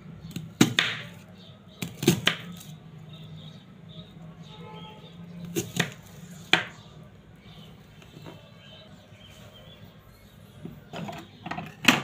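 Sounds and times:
knife cutting onion: 0.3 - 2.8, 5.4 - 6.8.

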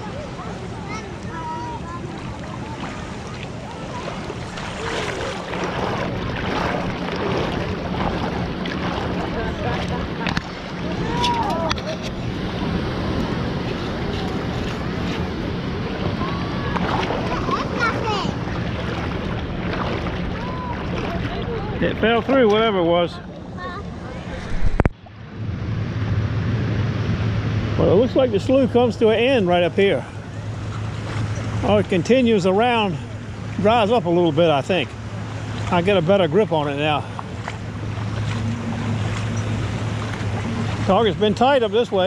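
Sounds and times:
water sloshing around wading feet: 0.0 - 25.2, 27.8 - 42.0
wind noise on microphone: 24.3 - 25.7.

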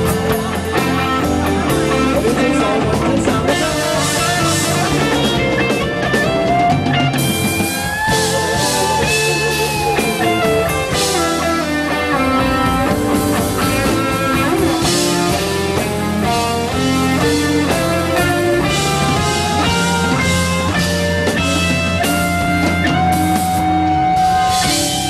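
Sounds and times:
bass guitar: 0.0 - 25.0
drum kit: 0.0 - 25.0
electric guitar lead: 0.0 - 25.0.

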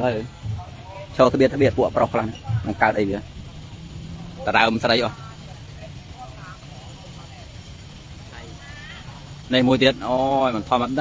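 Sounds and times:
faint distant voices: 0.0 - 11.0
low background hum: 0.0 - 11.0.

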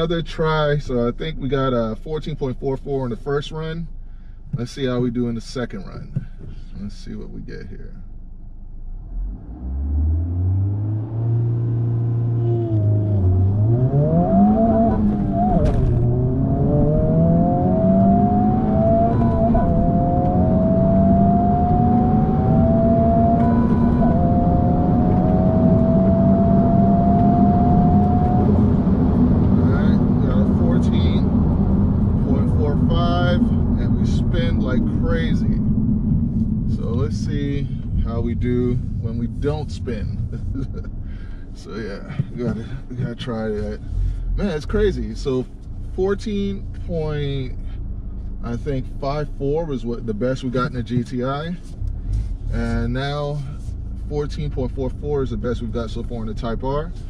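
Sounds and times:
road and tyre noise: 0.0 - 57.0
car engine accelerating: 8.8 - 57.0.

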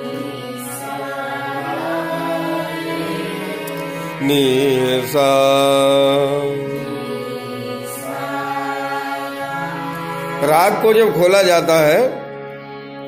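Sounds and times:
person singing: 0.0 - 12.1
harmonium chord: 0.0 - 13.0.

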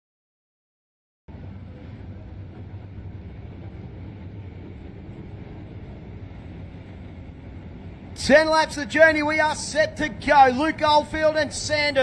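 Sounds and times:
race cars running at low speed: 1.3 - 12.0.

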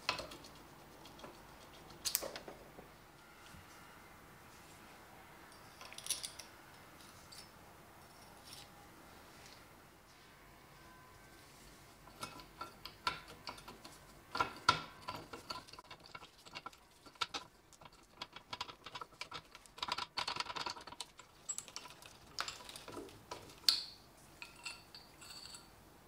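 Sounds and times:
metal ratchet clicking and scraping: 12.0 - 23.0.

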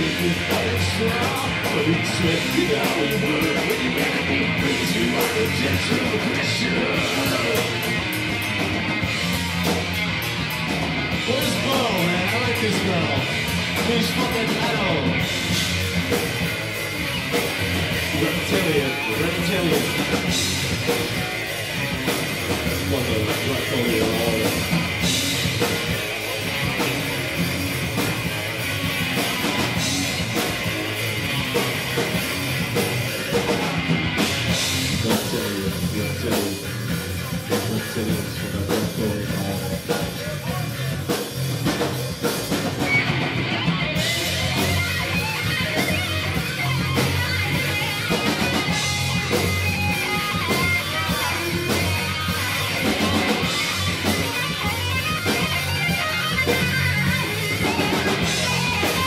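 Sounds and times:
distorted electric guitar: 0.0 - 59.0
drum kit: 0.0 - 59.0.

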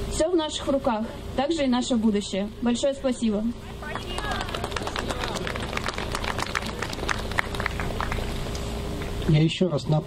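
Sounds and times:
crowd applauding: 3.8 - 8.4.

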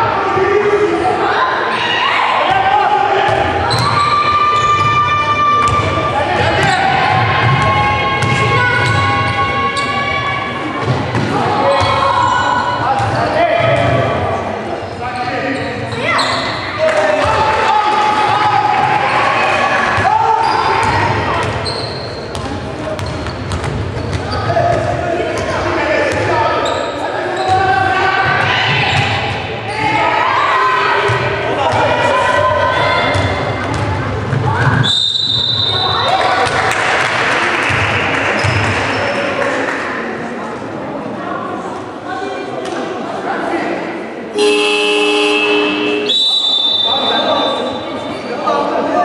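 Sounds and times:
players calling and shouting: 0.0 - 37.0, 41.6 - 49.0
basketball bouncing on court: 6.5 - 9.3, 22.3 - 25.5, 33.0 - 34.8
referee's whistle blast: 44.4 - 47.9.

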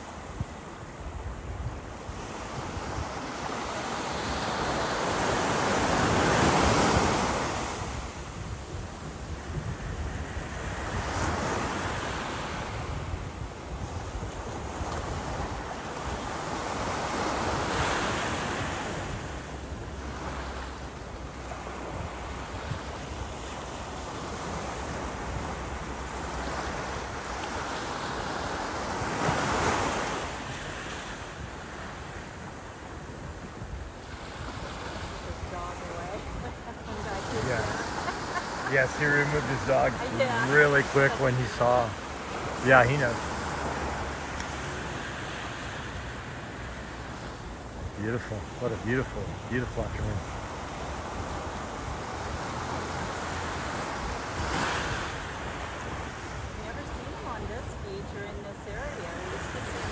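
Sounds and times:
surf breaking on a sandy beach: 0.0 - 59.9
wind rumbling on microphone: 0.0 - 59.9.

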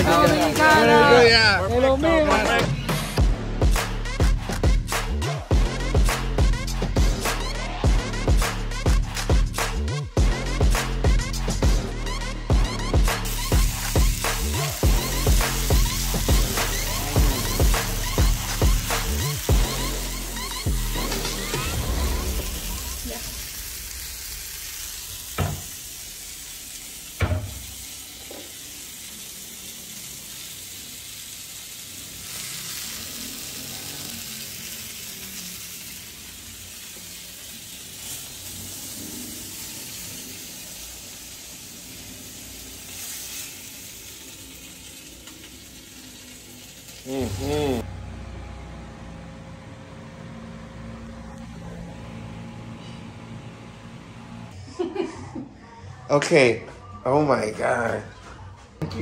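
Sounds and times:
electronic music with beat: 2.2 - 22.4
chicken sizzling in skillet: 13.0 - 47.8.

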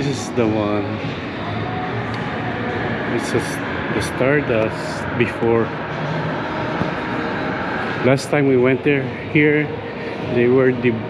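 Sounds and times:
faint murmur of voices: 0.0 - 11.0
ventilation hum and hiss: 0.0 - 11.0.

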